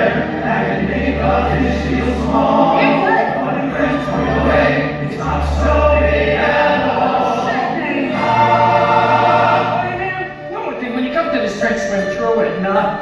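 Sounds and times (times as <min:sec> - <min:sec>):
ensemble singing in chorus: 0:00.0 - 0:10.2
instrumental backing: 0:00.0 - 0:13.0.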